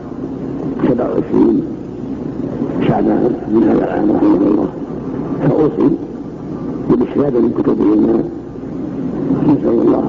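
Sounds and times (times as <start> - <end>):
man speaking muffled: 0.8 - 1.8, 2.8 - 4.8, 5.4 - 6.2, 6.9 - 8.4, 9.4 - 10.0.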